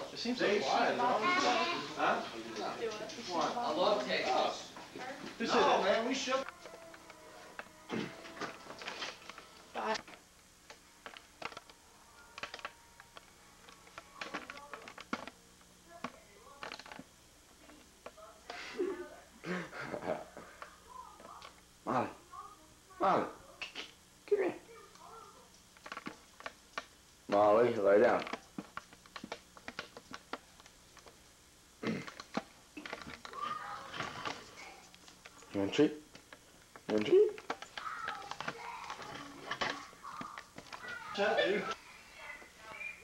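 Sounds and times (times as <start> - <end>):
faint steady hum: 0.0 - 43.0
faint clicks and taps: 6.4 - 18.2, 24.9 - 27.5, 28.1 - 31.2, 32.0 - 42.5.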